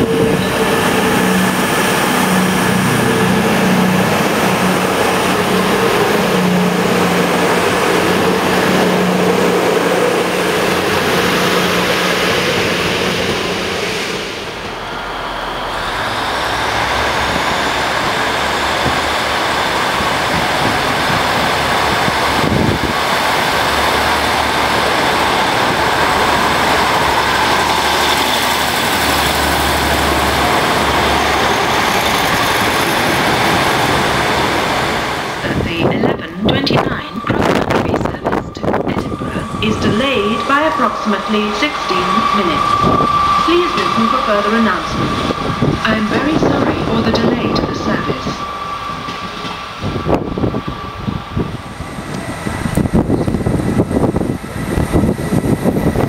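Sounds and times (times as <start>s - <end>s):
rising whine: 0.0s - 35.6s, 36.8s - 56.0s
diesel train engines running: 0.0s - 56.0s
loud diesel train engines: 0.0s - 56.0s.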